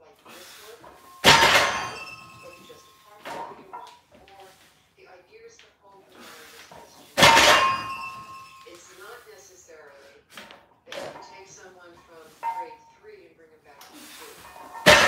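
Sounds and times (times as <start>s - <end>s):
barbell clanking on floor: 0.8s - 4.0s, 7.2s - 8.7s, 14.4s - 15.0s.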